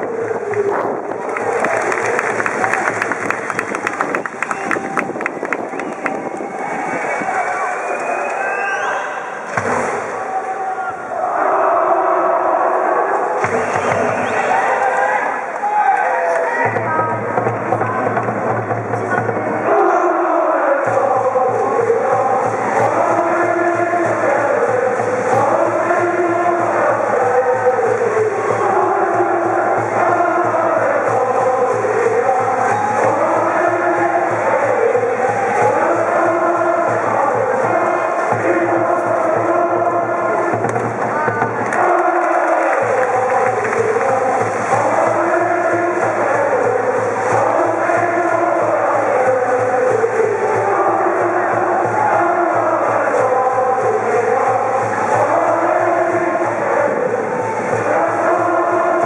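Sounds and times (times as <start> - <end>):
crowd chanting: 0.0 - 59.0.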